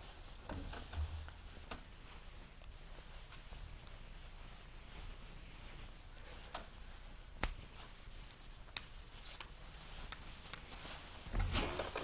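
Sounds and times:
soft footsteps: 0:00.0 - 0:12.0
metal folding chair thump: 0:11.3 - 0:12.0.

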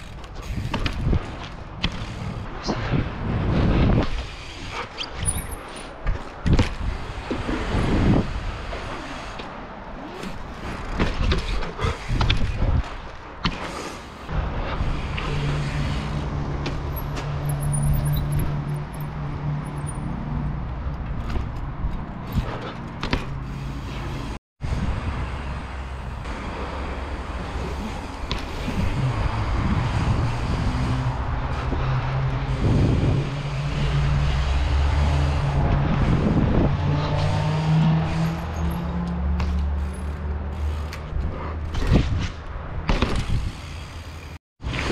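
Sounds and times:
bicycle tyres humming on asphalt: 0:00.0 - 0:44.9.

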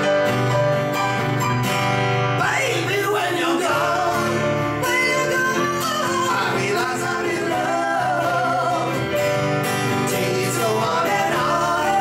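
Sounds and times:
piano: 0:00.0 - 0:12.0
strummed acoustic guitar: 0:00.0 - 0:12.0
man and woman singing: 0:02.4 - 0:12.0.

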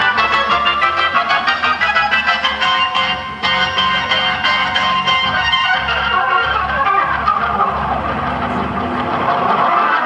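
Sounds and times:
overdriven organ playing: 0:00.0 - 0:10.0.

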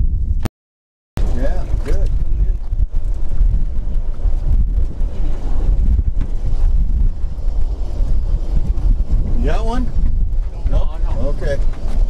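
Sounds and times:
wind buffeting microphone: 0:01.2 - 0:12.0.

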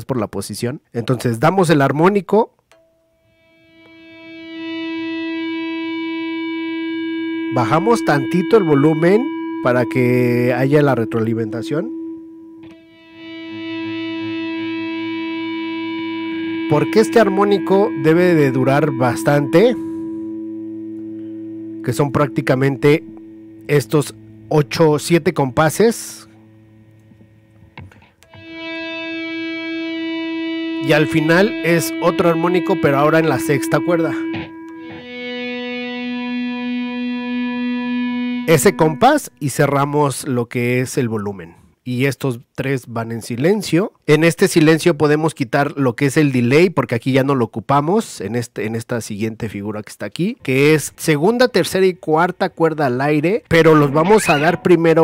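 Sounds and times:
electric guitar sustained harmonic: 0:02.8 - 0:39.6, 0:53.5 - 0:55.0.

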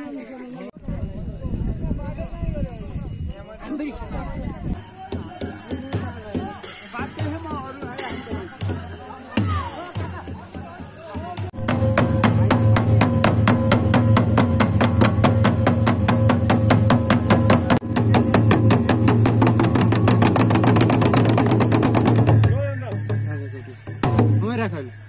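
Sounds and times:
voices: 0:00.0 - 0:25.0
barrel drums beaten with sticks: 0:05.1 - 0:24.8.

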